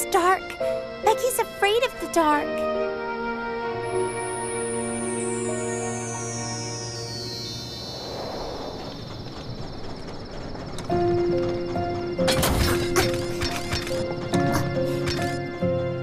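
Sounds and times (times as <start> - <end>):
soft background music: 0.0 - 8.0, 10.8 - 16.0
cartoon train rushing past: 3.8 - 15.4
clattering knocks: 9.0 - 16.0.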